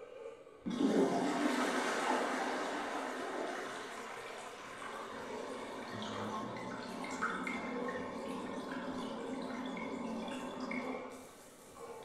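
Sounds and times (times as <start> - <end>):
water rushing down drain: 0.7 - 11.2.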